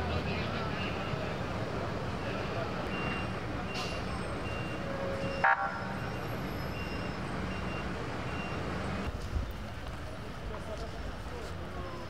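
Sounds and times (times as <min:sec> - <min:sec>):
faint voices: 0:09.9 - 0:12.0.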